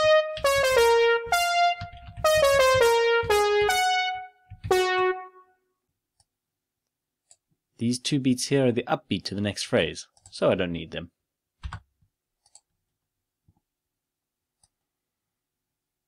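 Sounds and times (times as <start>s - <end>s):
electronic piano melody: 0.0s - 5.6s.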